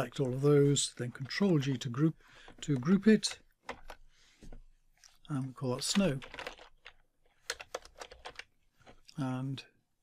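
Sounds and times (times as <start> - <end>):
typing on computer keyboard: 5.9 - 8.5.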